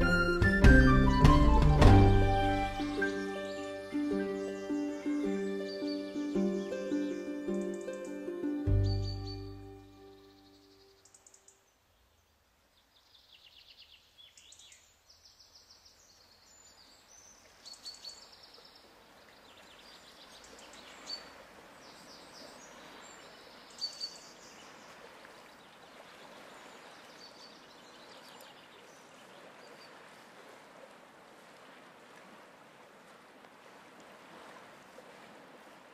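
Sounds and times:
background music: 0.0s - 10.5s
bird chirps and trills: 2.8s - 11.5s.

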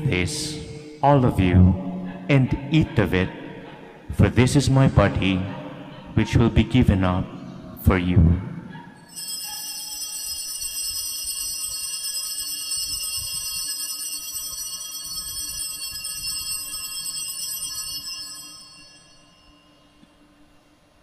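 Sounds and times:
altar bells jingling: 9.0s - 19.9s.

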